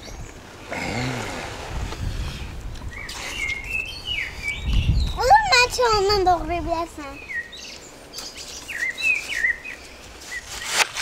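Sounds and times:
birds chirping: 0:00.0 - 0:10.8.

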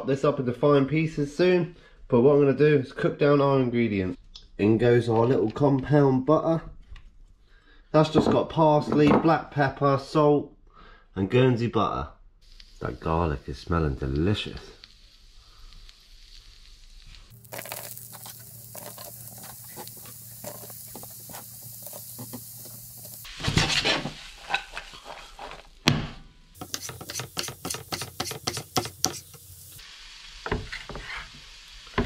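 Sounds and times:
food sizzling in a wok: 0:12.4 - 0:25.8, 0:26.5 - 0:32.0
utensil scraping the pan: 0:17.5 - 0:25.8, 0:26.6 - 0:29.4, 0:30.5 - 0:31.4
knife on wooden chopping board: 0:26.6 - 0:29.3.

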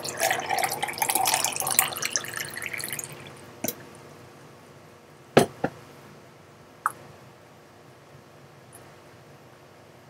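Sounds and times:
water pouring into a glass: 0:00.0 - 0:03.4.

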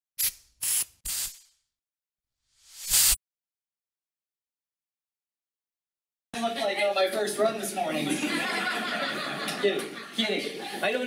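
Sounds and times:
whoosh sound effects: 0:02.6 - 0:03.2.

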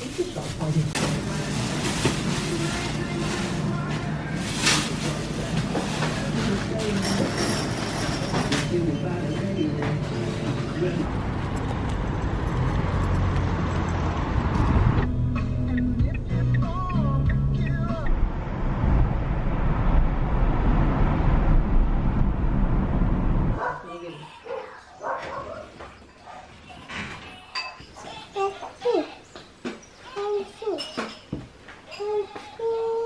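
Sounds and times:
road traffic: 0:01.1 - 0:24.4.

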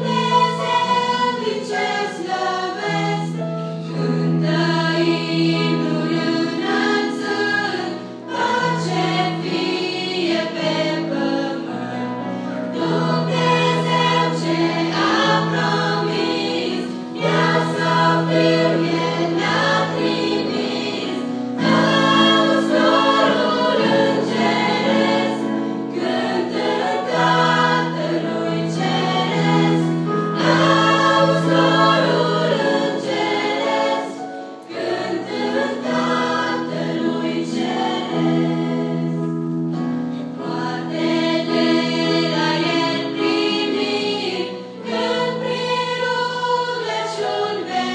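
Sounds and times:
choir singing a hymn: 0:00.0 - 0:47.9.

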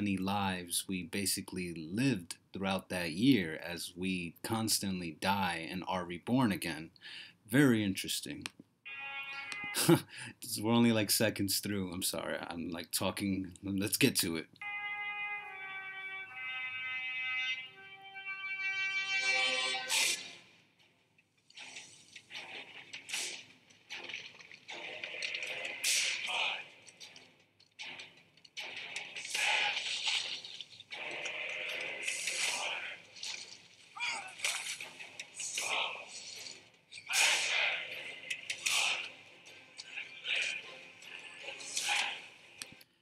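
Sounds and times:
sharp cracks: 0:21.2 - 0:39.2
scattered noise: 0:21.6 - 0:39.2.

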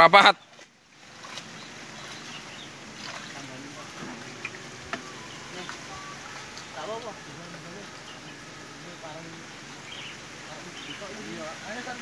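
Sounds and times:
outdoor wash: 0:00.0 - 0:12.0
water trickling and sloshing: 0:00.1 - 0:12.0.

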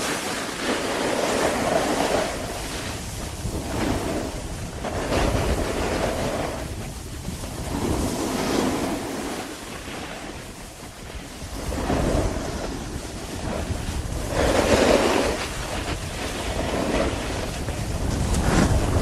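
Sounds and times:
ski edges scraping snow: 0:00.0 - 0:19.0
wind buffeting microphone: 0:00.0 - 0:19.0.

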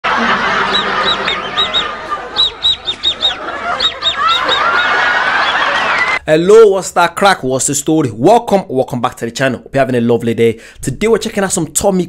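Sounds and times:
man laughing in squeaky wheezes: 0:00.1 - 0:06.2.

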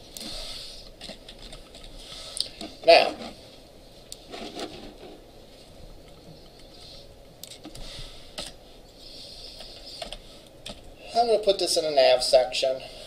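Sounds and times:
faint room noise: 0:00.0 - 0:13.0
keyboard and mouse clicks: 0:01.0 - 0:02.7, 0:09.6 - 0:10.9.

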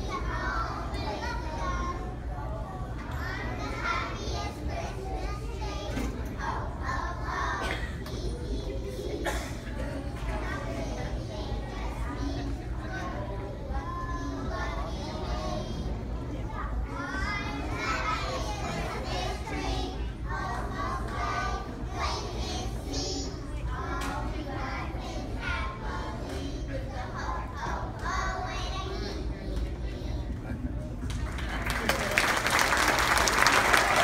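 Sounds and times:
children singing together: 0:00.0 - 0:30.3
children singing: 0:17.0 - 0:29.4.

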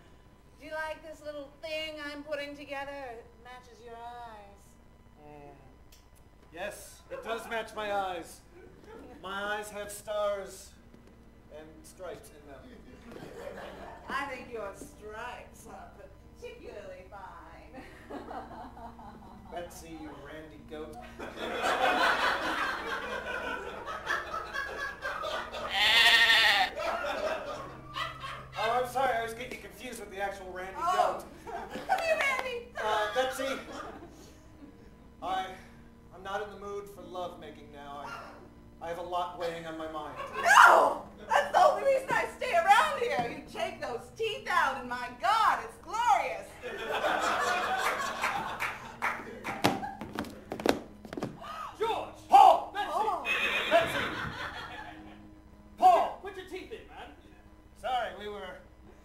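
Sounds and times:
woman bleating like a goat: 0:25.7 - 0:26.7.

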